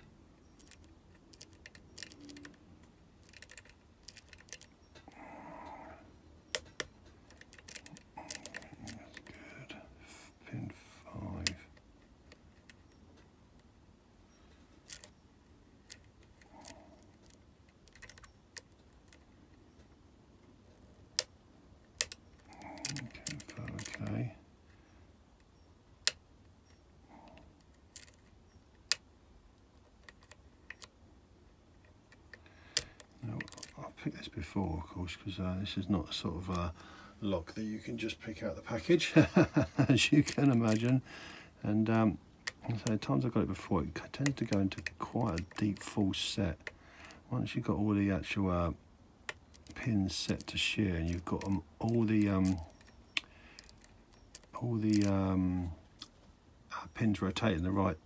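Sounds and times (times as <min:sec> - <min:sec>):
lock pick metallic clicks: 0:00.0 - 0:05.2, 0:06.5 - 0:09.3, 0:14.5 - 0:15.2, 0:15.8 - 0:19.9, 0:21.1 - 0:24.2, 0:25.4 - 0:29.1, 0:29.8 - 0:31.0, 0:31.8 - 0:33.8, 0:39.3 - 0:41.0, 0:44.0 - 0:47.2, 0:49.2 - 0:55.3.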